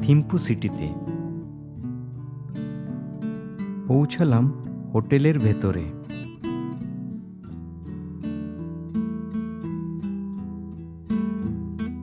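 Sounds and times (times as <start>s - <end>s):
strummed acoustic guitar: 0.0s - 12.0s.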